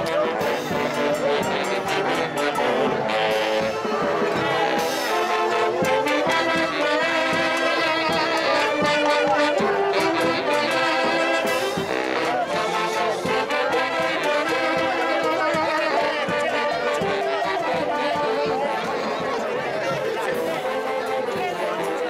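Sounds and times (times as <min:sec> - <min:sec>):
loud crowd chatter: 0:00.0 - 0:22.0
saxophone band music: 0:00.0 - 0:22.0.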